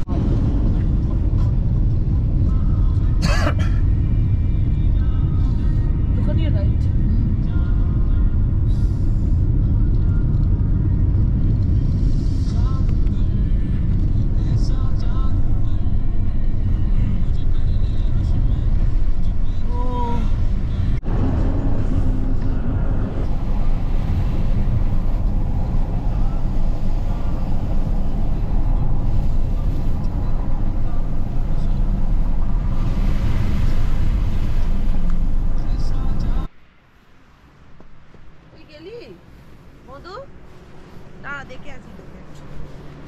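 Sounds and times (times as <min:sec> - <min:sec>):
car tyres and engine rumble: 0:00.0 - 0:43.0.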